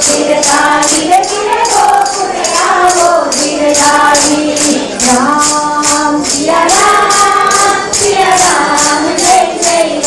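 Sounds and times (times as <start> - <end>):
group singing devotional song: 0.0 - 10.0
jingling hand percussion: 0.0 - 10.0.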